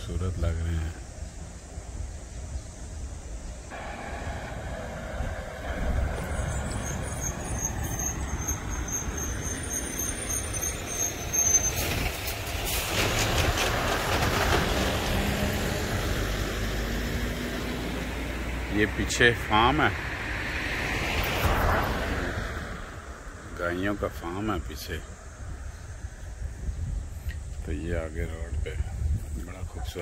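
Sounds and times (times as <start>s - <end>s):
large vehicle passing: 3.7s - 26.5s.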